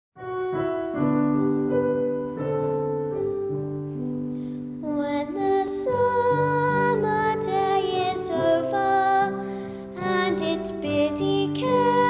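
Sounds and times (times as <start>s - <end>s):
piano accompaniment: 0.2s - 12.0s
girl singing a folk song: 4.8s - 12.0s.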